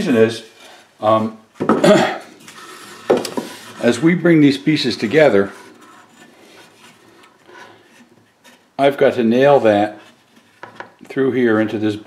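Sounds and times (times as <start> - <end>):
wooden boards knocking on box: 1.6 - 1.9.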